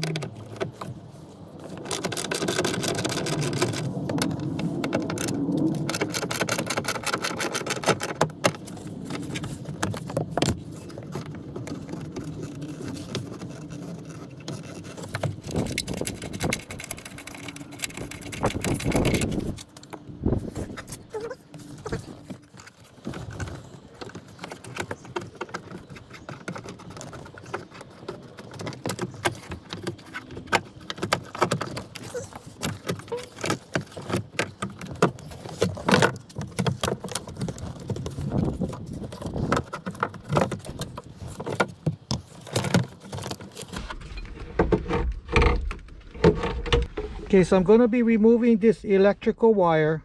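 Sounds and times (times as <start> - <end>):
seatbelt parts handled: 0.0 - 43.9.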